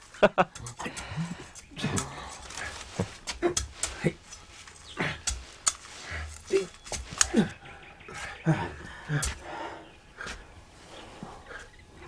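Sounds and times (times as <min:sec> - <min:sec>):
knocks and scuffling: 0:00.0 - 0:11.4.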